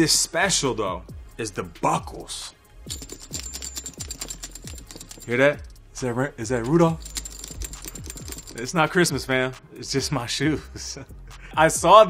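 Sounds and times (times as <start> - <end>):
metal buckles jingling: 2.9 - 9.3.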